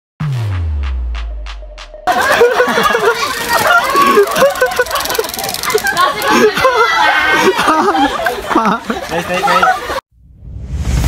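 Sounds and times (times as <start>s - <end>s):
people chattering: 2.1s - 10.0s.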